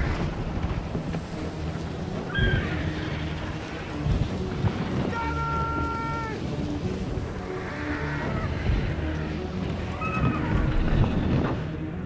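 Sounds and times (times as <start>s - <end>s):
deep wind-like rumble: 0.0s - 12.0s.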